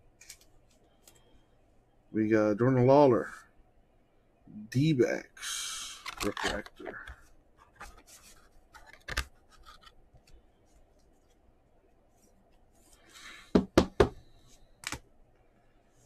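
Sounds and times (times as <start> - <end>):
card rustle: 5.9 - 11.4.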